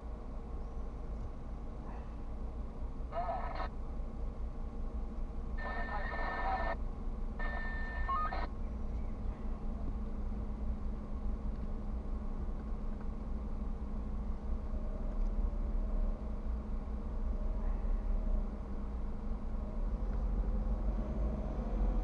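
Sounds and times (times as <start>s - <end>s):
car idling rumble: 0.0s - 22.0s
electronic ringing tone: 5.6s - 6.8s, 7.4s - 8.5s.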